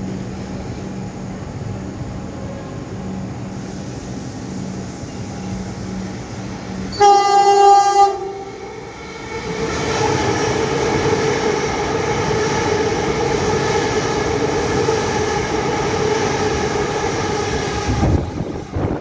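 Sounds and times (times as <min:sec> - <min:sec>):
train wheels rumbling on rail: 0:00.0 - 0:19.0
train whine: 0:00.0 - 0:19.0
train horn blast: 0:06.9 - 0:08.7.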